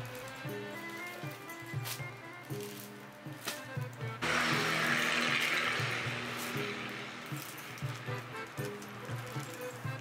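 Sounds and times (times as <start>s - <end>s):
background music: 0.0s - 10.0s
loud rushing hissing noise: 4.2s - 9.8s.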